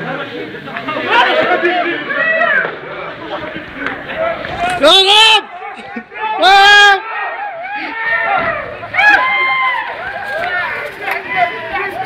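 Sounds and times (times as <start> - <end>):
people talking and shouting: 0.0 - 12.0.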